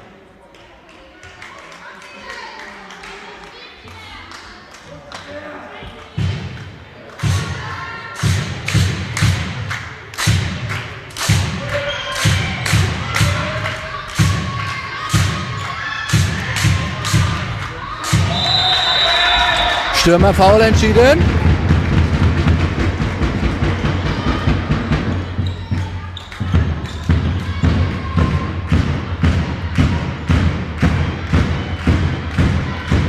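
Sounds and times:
people shouting: 0:11.7 - 0:21.2
referee's whistle blast: 0:18.2 - 0:20.0.

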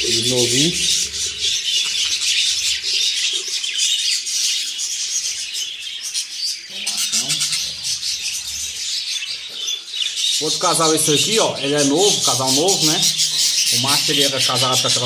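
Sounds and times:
budgerigars chattering and chirping: 0:00.0 - 0:15.0.

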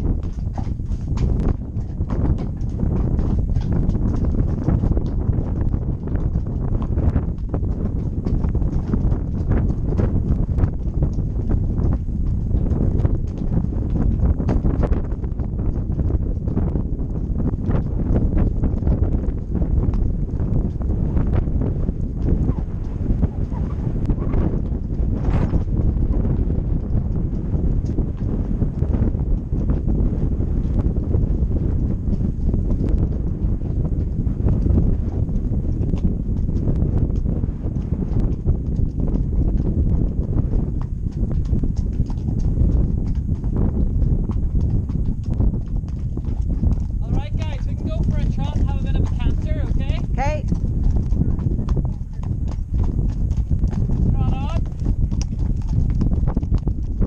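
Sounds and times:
horse hooves clip-clopping: 0:00.0 - 0:57.0
wind rumble on microphone: 0:00.0 - 0:57.0.

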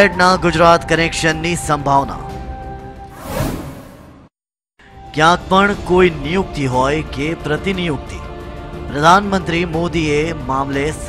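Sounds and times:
background music: 0:00.0 - 0:03.8, 0:04.8 - 0:11.0
whoosh transition: 0:03.1 - 0:04.3.

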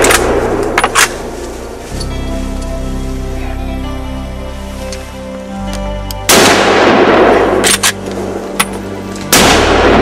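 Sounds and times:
gunshots with rolling echo: 0:00.0 - 0:01.6, 0:06.3 - 0:10.0
music playing: 0:00.0 - 0:10.0.

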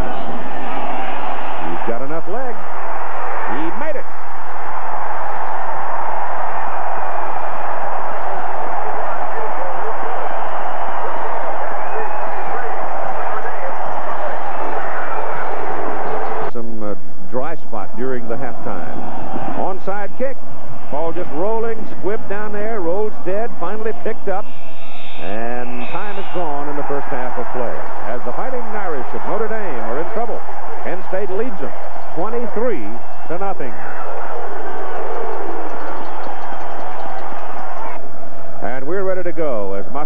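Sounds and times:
stadium crowd noise: 0:00.0 - 0:40.0
voices speaking: 0:19.6 - 0:24.5, 0:25.2 - 0:35.8.

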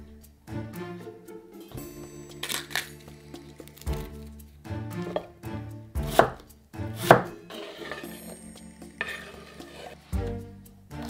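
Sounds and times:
knife chopping on wooden board: 0:06.1 - 0:08.1.

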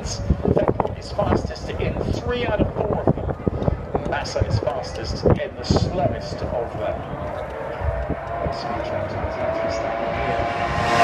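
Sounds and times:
echoing announcer commentary: 0:00.0 - 0:11.0
wind buffeting microphone: 0:00.0 - 0:11.0.

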